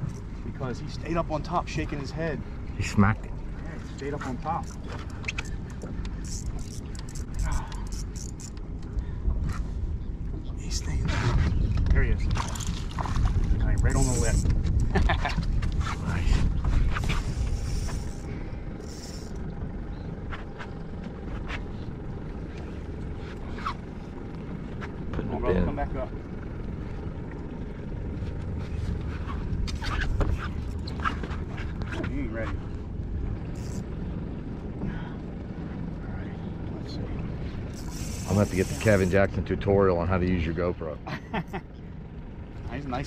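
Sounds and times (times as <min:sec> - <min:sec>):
fishing reel clicking: 0:04.6 - 0:08.6, 0:17.2 - 0:19.4, 0:33.5 - 0:33.8, 0:37.7 - 0:39.2
wind on microphone: 0:09.3 - 0:18.2.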